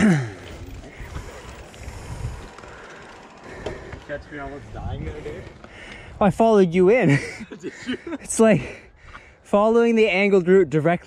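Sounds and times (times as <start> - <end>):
bike tyres rolling over dirt: 0.0 - 6.6.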